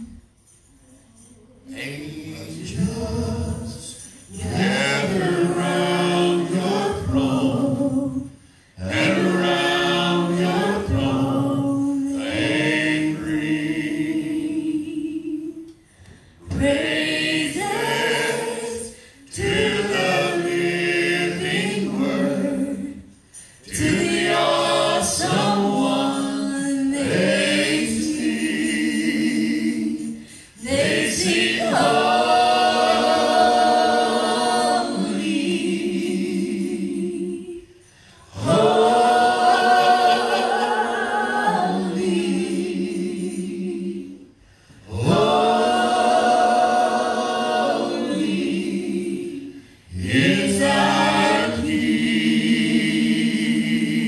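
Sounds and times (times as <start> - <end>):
group singing worship songs: 0.0 - 54.0.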